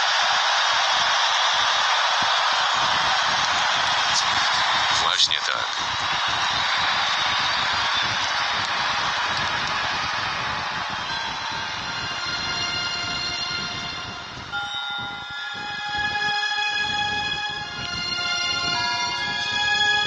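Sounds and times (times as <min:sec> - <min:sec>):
crowd applauding: 0:00.0 - 0:20.0
music with long held tones: 0:05.8 - 0:20.0.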